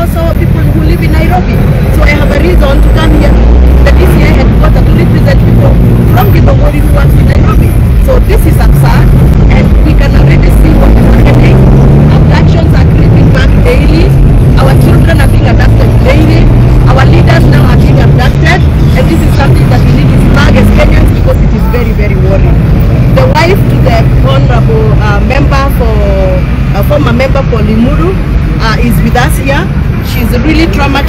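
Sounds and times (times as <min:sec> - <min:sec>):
people talking: 0:00.0 - 0:22.6, 0:23.2 - 0:31.0
engine humming: 0:00.0 - 0:31.0.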